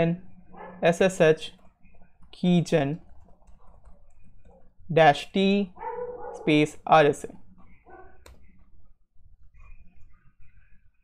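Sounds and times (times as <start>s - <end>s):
keyboard typing: 1.6s - 4.7s.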